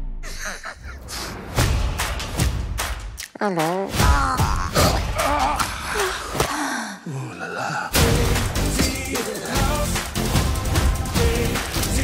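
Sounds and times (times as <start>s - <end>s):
woman's groaning cry: 4.0s - 6.4s.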